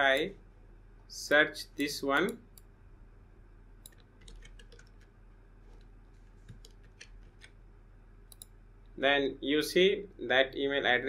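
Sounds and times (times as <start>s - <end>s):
low steady hum: 0.0s - 11.0s
mouse and keyboard clicks: 6.4s - 7.6s.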